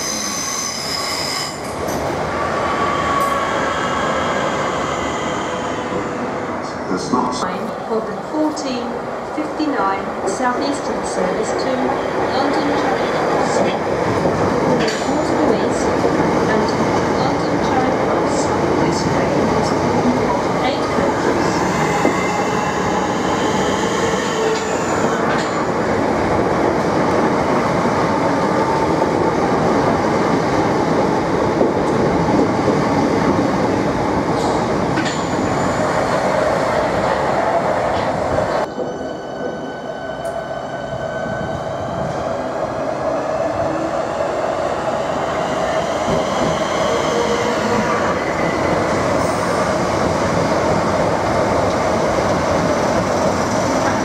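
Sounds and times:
train wheels rumbling on track: 0:09.8 - 0:54.0.

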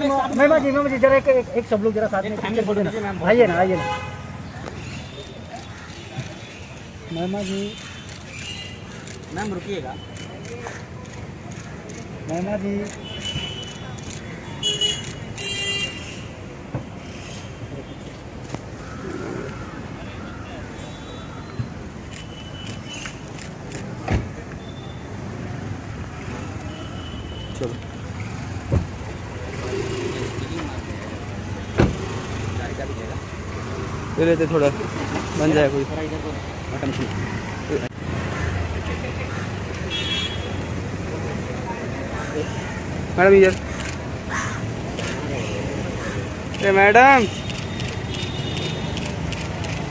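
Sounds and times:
street traffic noise: 0:00.0 - 0:49.9.

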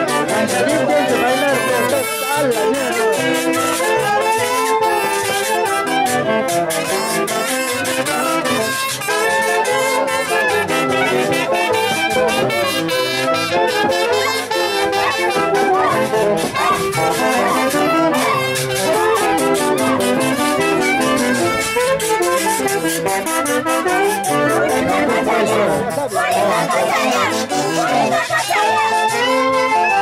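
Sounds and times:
brass band playing dance music: 0:00.0 - 0:30.0.

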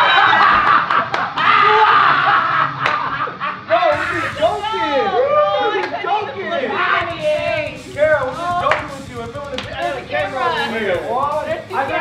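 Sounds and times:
people laughing: 0:00.0 - 0:05.3
people shouting excitedly: 0:03.9 - 0:12.0.

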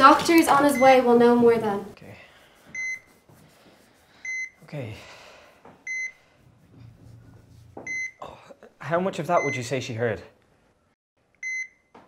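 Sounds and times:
heart monitor beeping: 0:02.7 - 0:03.1, 0:04.2 - 0:04.6, 0:05.8 - 0:06.2, 0:07.8 - 0:08.2, 0:11.4 - 0:11.9.

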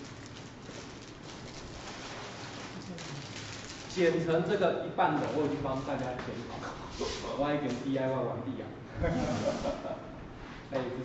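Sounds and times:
packaging and cardboard rustling: 0:00.0 - 0:04.3.

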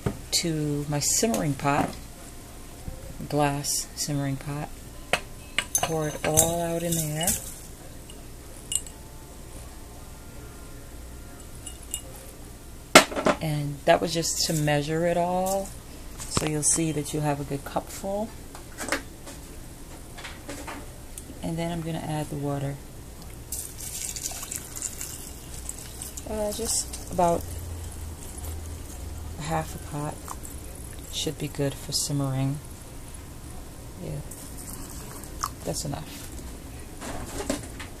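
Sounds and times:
glass jar clinking on pot rim: 0:05.5 - 0:09.0, 0:11.4 - 0:12.2, 0:23.5 - 0:29.2.

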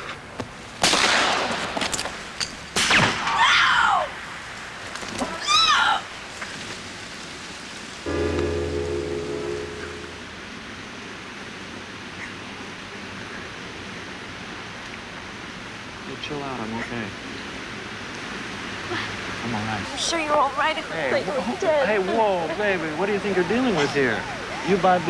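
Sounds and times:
held music chord: 0:08.1 - 0:10.6.

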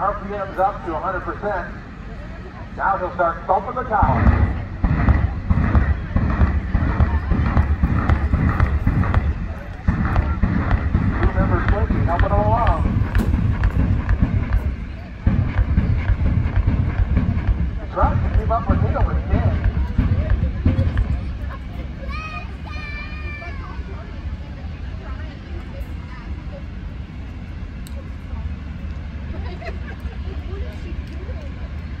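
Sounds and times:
distant jet engine rumbling: 0:00.0 - 0:32.0
voices: 0:00.0 - 0:32.0.

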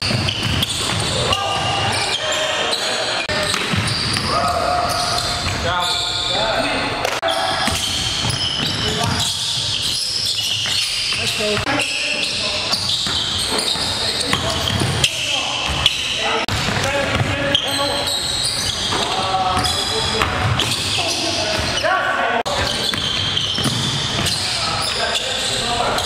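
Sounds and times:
players calling out: 0:00.1 - 0:26.0
basketball bouncing on hardwood: 0:22.9 - 0:24.3.

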